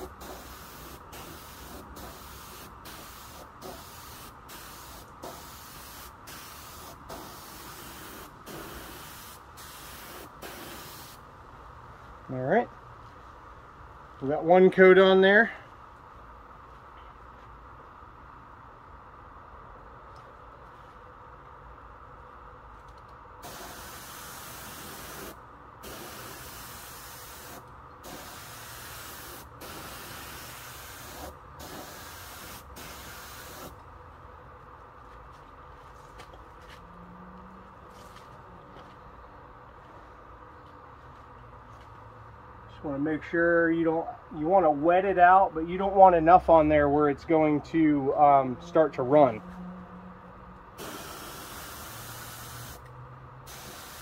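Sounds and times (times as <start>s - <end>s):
spray gun hissing: 0.0s - 11.2s, 23.4s - 33.7s, 50.8s - 52.8s, 53.5s - 54.0s.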